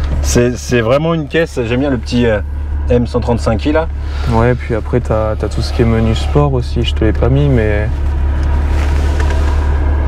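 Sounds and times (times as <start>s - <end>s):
car engine rumbling in cabin: 0.0s - 10.0s.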